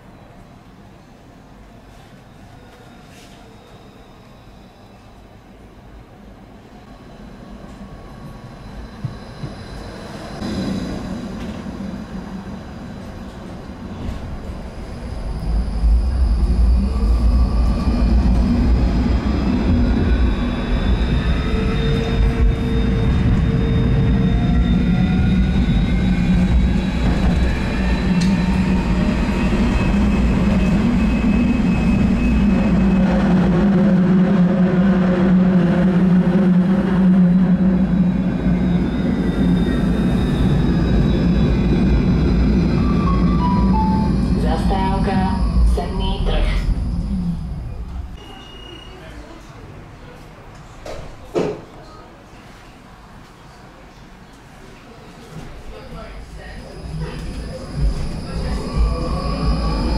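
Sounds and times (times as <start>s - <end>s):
tram wheels rumbling on rails: 6.9s - 51.8s, 55.1s - 59.9s.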